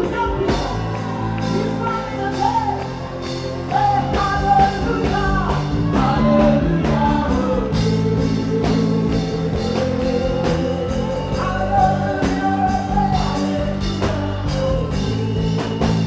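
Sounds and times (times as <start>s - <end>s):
backing singers: 0.0s - 16.0s
full band playing worship music: 0.0s - 16.0s
woman singing lead: 0.0s - 16.0s.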